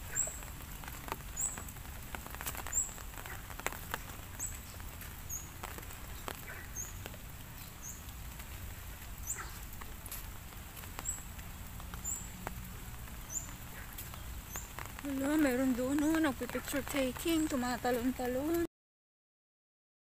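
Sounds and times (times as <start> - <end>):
faint outdoor background: 0.0 - 18.7
small bird chirping: 13.2 - 17.6.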